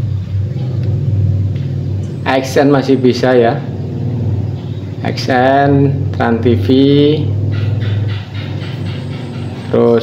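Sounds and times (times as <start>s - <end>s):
low mechanical drone: 0.0s - 10.0s.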